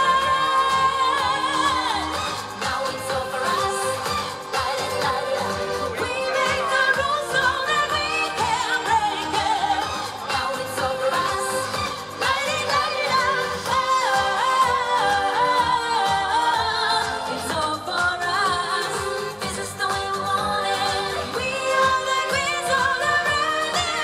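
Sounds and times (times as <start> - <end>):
pop song with steady beat: 0.0 - 24.0
woman singing into a microphone: 0.0 - 24.0.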